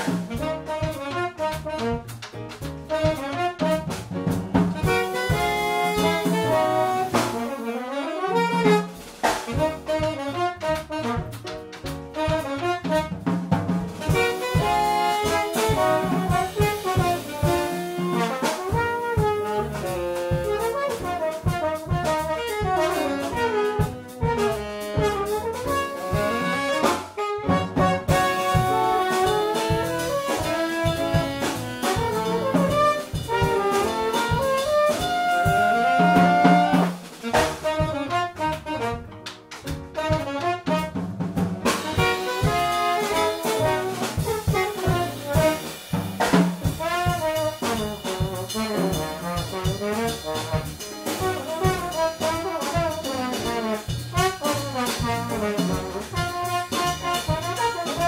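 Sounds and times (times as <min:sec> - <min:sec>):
upright bass: 0:00.0 - 0:07.6, 0:08.4 - 0:58.0
drum kit: 0:00.0 - 0:58.0
trombone: 0:00.0 - 0:58.0
alto saxophone: 0:00.1 - 0:02.3, 0:02.9 - 0:04.0, 0:04.8 - 0:13.2, 0:14.0 - 0:41.0, 0:41.6 - 0:58.0.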